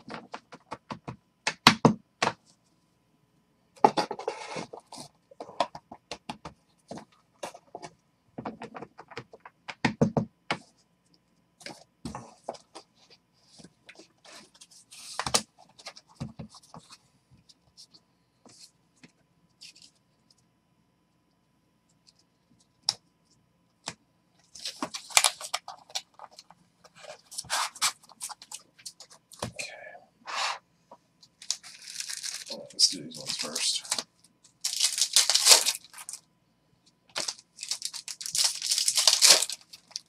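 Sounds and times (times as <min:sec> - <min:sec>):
wrappers rustling: 0:31.4 - 0:34.0, 0:34.6 - 0:36.2, 0:37.2 - 0:40.0.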